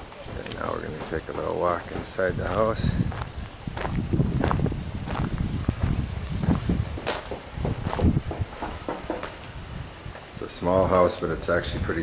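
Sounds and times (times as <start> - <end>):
footsteps on gravel: 0.1 - 8.8
footsteps on tiled floor: 0.2 - 9.2.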